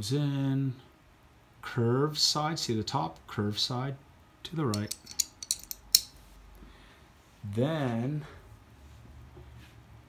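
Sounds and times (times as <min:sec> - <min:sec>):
light metal clicks: 0:04.7 - 0:06.1.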